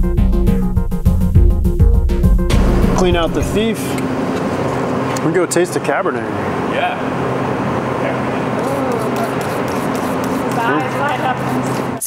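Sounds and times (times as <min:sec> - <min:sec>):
machine drone with low hum: 0:00.0 - 0:12.0.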